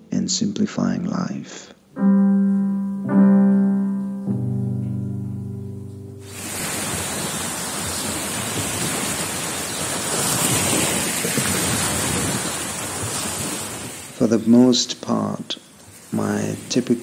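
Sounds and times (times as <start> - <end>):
waves breaking along a shore: 6.2 - 14.8, 15.4 - 17.0
wind rushing over microphone: 6.3 - 14.2.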